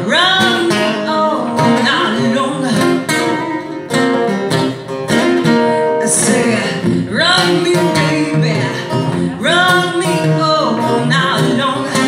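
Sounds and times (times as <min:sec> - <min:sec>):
woman singing: 0:00.0 - 0:03.9, 0:05.6 - 0:12.0
acoustic guitars: 0:00.0 - 0:12.0.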